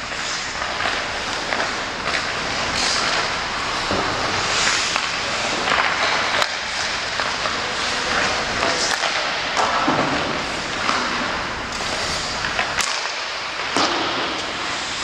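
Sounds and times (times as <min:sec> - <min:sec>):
hockey sticks striking pucks: 0:00.0 - 0:15.0
pucks hitting boards: 0:00.0 - 0:15.0
skate blades scraping ice: 0:00.0 - 0:15.0.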